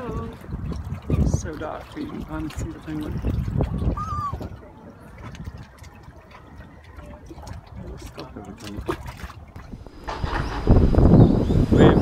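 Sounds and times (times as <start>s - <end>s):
water lapping among rocks: 0.0s - 10.7s.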